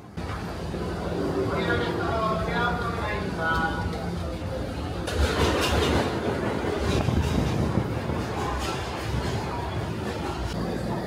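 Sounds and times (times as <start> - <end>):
subway train rumble: 0.0 - 11.0
wheels clattering on rails: 5.0 - 10.6.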